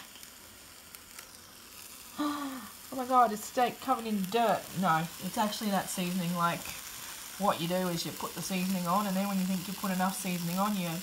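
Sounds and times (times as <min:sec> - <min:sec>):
steak sizzling in sandwich press: 0:00.0 - 0:11.0.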